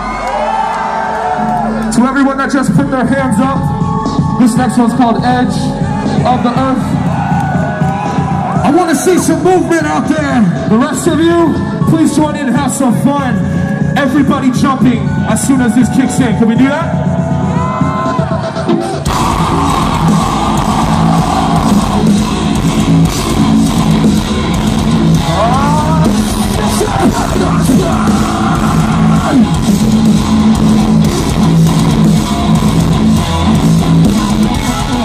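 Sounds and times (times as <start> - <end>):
live metal band playing loud: 18.8 - 35.0.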